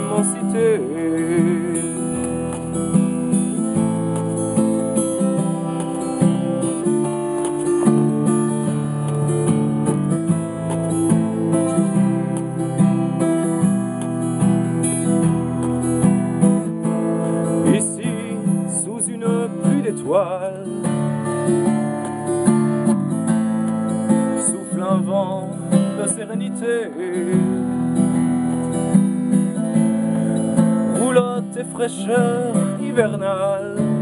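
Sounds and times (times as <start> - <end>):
acoustic guitar strumming: 0.0 - 34.0.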